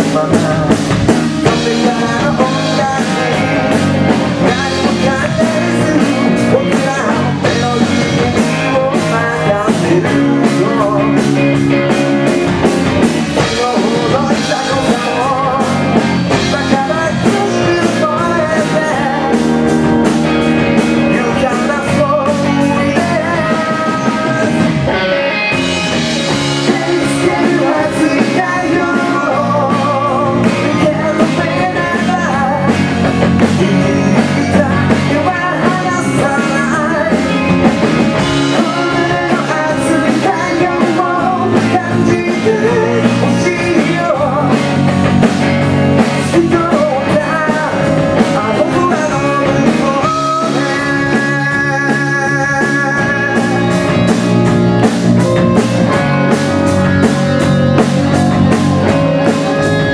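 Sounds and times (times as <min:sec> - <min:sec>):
male lead vocal singing: 0:00.0 - 0:59.9
rock band playing: 0:00.0 - 0:59.9.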